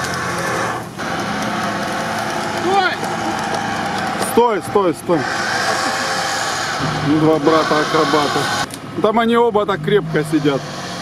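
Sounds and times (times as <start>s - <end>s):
off-road vehicle engines: 0.0s - 11.0s.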